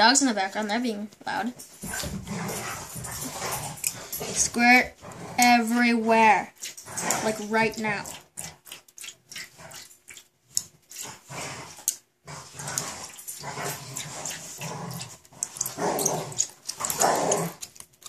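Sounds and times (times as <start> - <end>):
dogs growling and barking: 1.7 - 18.0.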